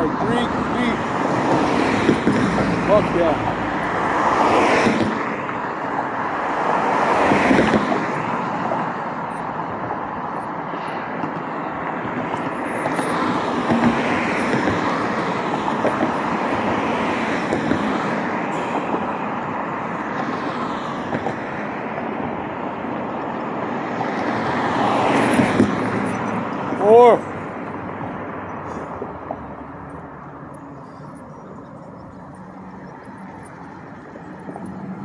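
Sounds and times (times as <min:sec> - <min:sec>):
cars passing on road: 0:00.0 - 0:35.0.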